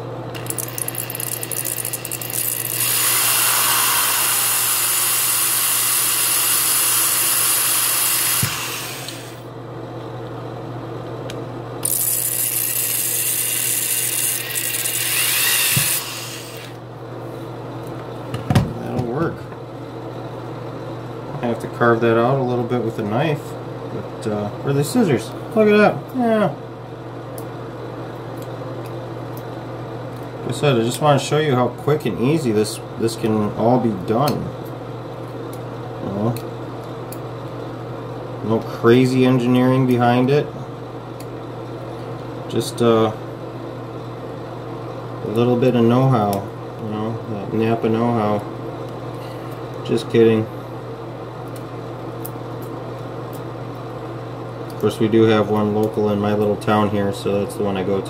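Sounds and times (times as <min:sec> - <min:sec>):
low machine hum: 0:00.0 - 0:58.0.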